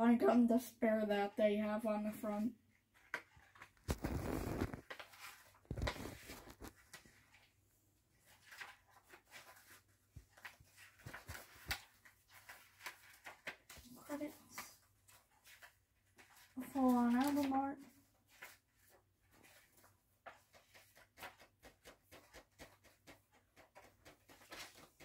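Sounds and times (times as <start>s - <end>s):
paper booklet rustling: 2.9s - 7.6s, 8.2s - 25.0s.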